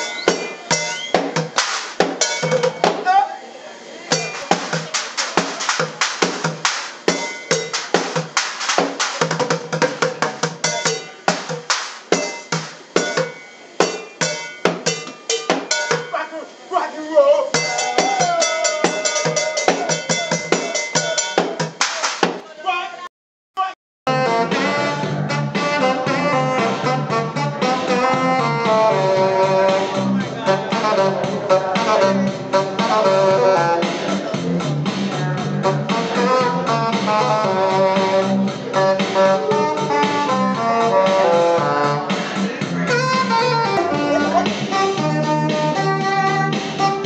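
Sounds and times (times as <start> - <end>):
drumsticks on metal pans: 10.0 - 16.2.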